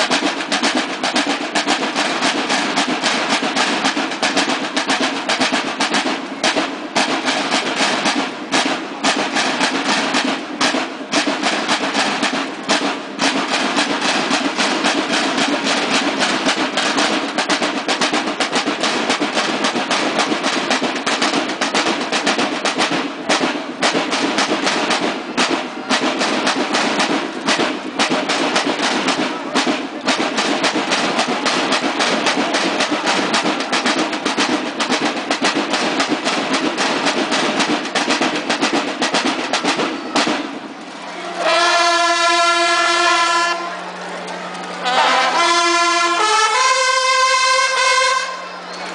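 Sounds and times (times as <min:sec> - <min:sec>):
snare drums march cadence: 0:00.0 - 0:48.9
bugles holding a note: 0:38.0 - 0:48.9.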